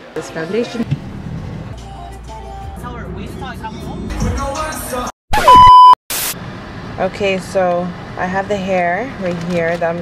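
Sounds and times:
electronic bleep: 0:05.3 - 0:06.0.

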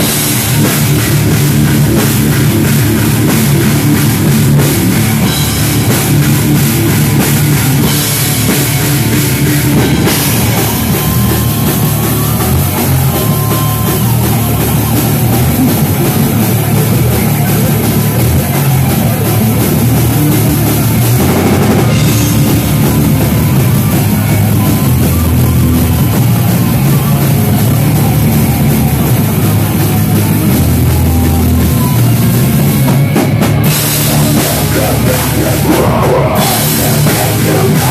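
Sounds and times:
drum kit with cymbals: 0:00.0 - 0:37.9
electric guitars: 0:00.0 - 0:37.9
metal band playing: 0:00.0 - 0:37.9.

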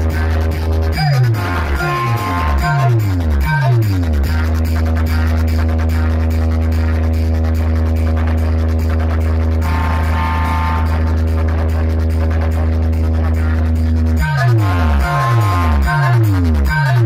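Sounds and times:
deep bass drone from speakers: 0:00.0 - 0:17.0
higher tone: 0:01.1 - 0:03.8, 0:09.6 - 0:11.4.

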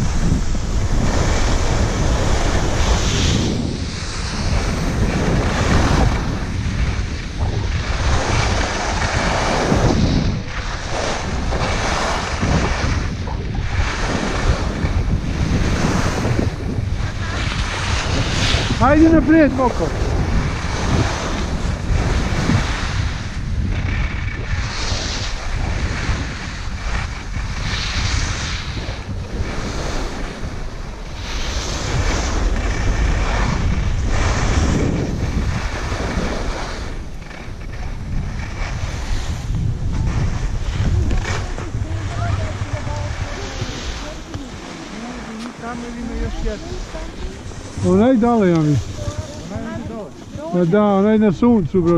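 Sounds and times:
skis scraping on packed snow: 0:00.0 - 0:51.9
wind rumbling on microphone: 0:00.0 - 0:51.9.

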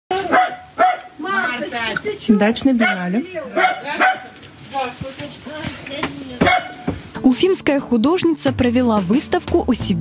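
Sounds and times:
dog barking: 0:00.2 - 0:01.2, 0:02.8 - 0:04.4, 0:06.4 - 0:06.9.

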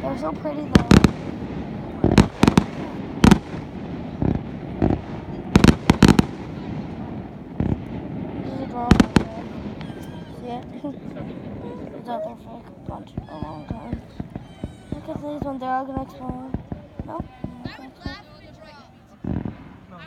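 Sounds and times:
fireworks bursting with sharp bangs: 0:00.0 - 0:20.0.

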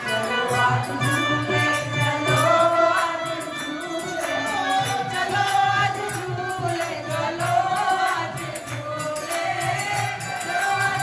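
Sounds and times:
women singing in chorus: 0:00.0 - 0:11.0.

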